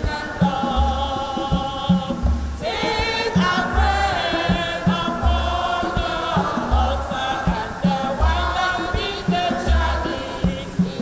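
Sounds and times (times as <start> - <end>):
congregation singing a hymn: 0.0 - 11.0
low drum beat: 0.0 - 11.0.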